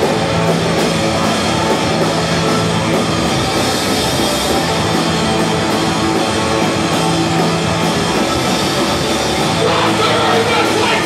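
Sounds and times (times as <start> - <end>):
distorted guitar: 0.0 - 11.0
drums: 0.0 - 11.0
heavy rock band playing: 0.0 - 11.0.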